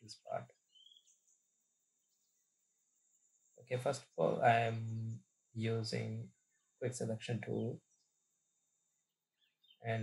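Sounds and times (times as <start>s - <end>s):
faint high-pitched whine: 0.0s - 9.2s.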